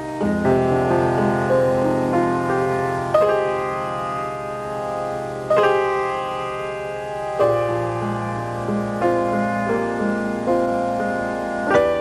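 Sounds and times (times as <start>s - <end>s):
jazz piano chords: 0.0s - 12.0s.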